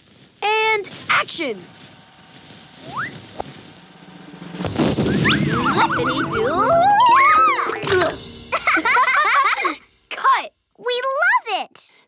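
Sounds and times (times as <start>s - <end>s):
cartoon drum roll: 4.0s - 10.1s.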